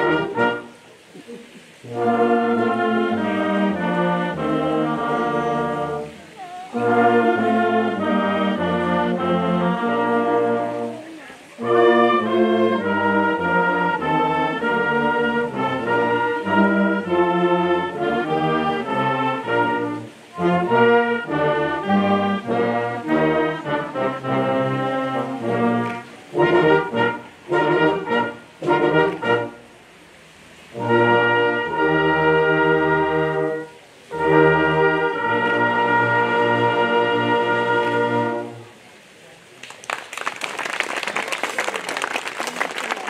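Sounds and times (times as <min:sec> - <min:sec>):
wind band playing chords: 0:00.0 - 0:39.2.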